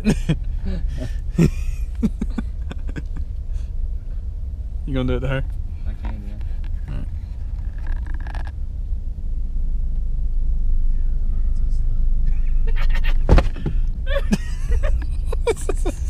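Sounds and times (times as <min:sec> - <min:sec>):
road and engine rumble in car: 0:00.0 - 0:16.0
sharp thump: 0:13.2 - 0:13.9.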